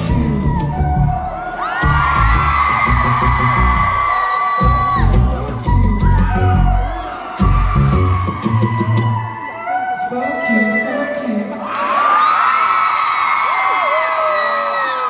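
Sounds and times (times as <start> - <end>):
crowd screaming and whooping: 0.0 - 10.1, 11.5 - 15.0
amplified live music with bass beat: 0.0 - 10.2.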